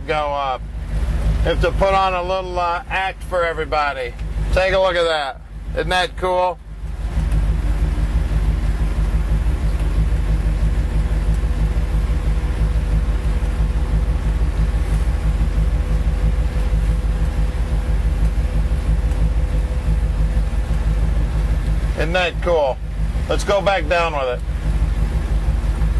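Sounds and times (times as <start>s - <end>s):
vee eight engine idling rumble: 0.0s - 25.9s.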